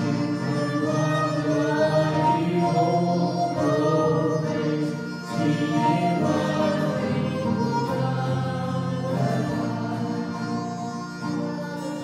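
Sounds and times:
acoustic guitar: 0.0s - 12.0s
group singing a hymn: 0.0s - 12.0s.

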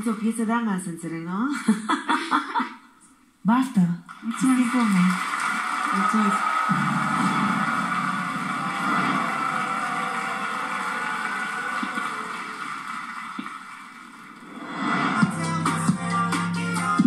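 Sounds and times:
audience cheering on television: 4.2s - 15.1s.

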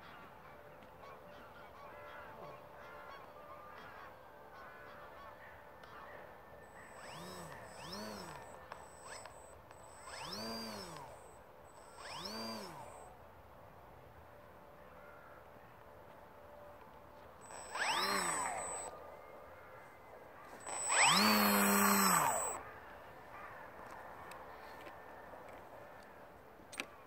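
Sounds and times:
model airplane motor throttling: 6.7s - 13.0s, 17.4s - 18.9s, 20.5s - 22.6s.

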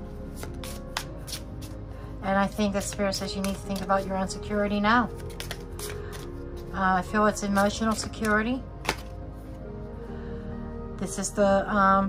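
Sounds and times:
soft background music: 0.0s - 12.0s
cards being shuffled: 0.4s - 1.8s, 2.4s - 4.2s, 5.1s - 6.7s, 7.6s - 9.2s.

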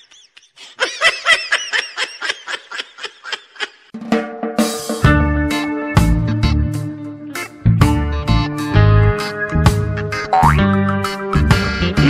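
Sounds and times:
person giggling: 0.0s - 4.0s.

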